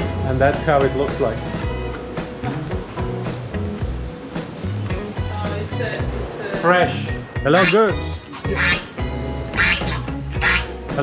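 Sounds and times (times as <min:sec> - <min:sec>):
background music: 0:00.0 - 0:11.0
waterfowl calling harshly: 0:07.5 - 0:10.8.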